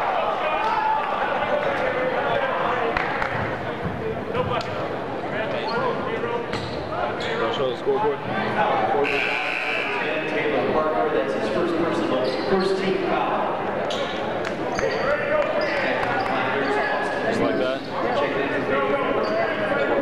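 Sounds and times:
indistinct crowd chatter: 0:00.0 - 0:20.0.

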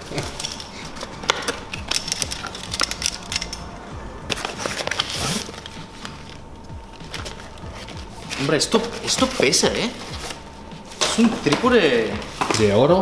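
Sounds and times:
bubble wrap crinkling and crackling: 0:04.3 - 0:13.0.

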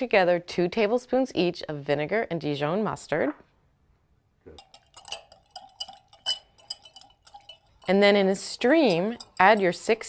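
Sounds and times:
whisk clicking against glass bowl: 0:04.6 - 0:10.0.

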